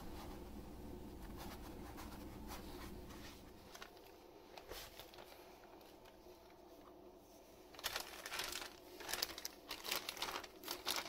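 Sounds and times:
low steady hum: 0:00.0 - 0:11.0
paper towels rustling: 0:00.0 - 0:11.0.

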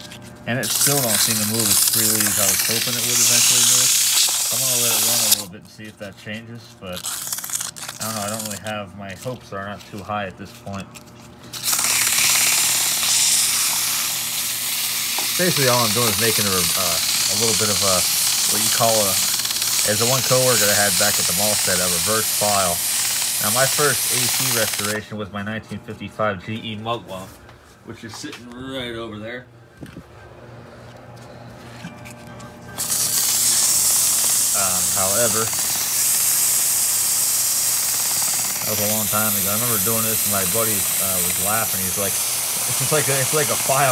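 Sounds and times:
sandpaper rasping on spinning shaft: 0:00.0 - 0:05.5, 0:07.0 - 0:08.7, 0:11.6 - 0:25.0, 0:32.8 - 0:43.9
faint low motor hum: 0:00.0 - 0:43.9.

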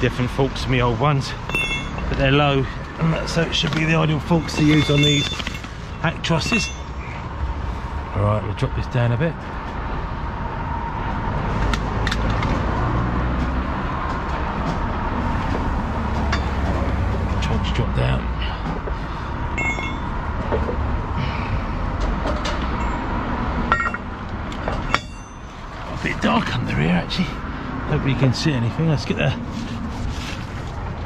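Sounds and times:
truck engine rumbling: 0:00.0 - 0:31.0
metallic clinks: 0:01.4 - 0:02.2, 0:03.8 - 0:07.2, 0:19.5 - 0:20.3, 0:22.7 - 0:25.7.

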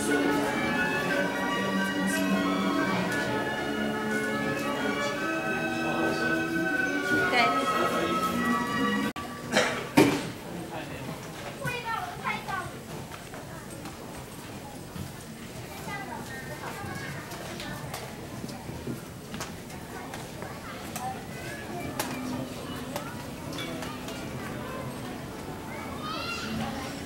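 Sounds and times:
indistinct voices: 0:00.0 - 0:09.8, 0:19.6 - 0:27.0
background chatter: 0:00.0 - 0:27.0.

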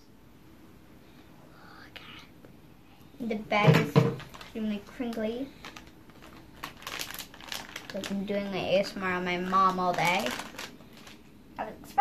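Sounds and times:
foil pouch crinkling: 0:04.1 - 0:11.3.

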